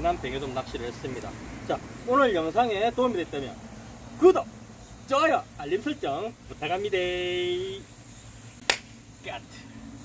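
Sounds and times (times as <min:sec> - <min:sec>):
finger snap: 0:08.6 - 0:09.0.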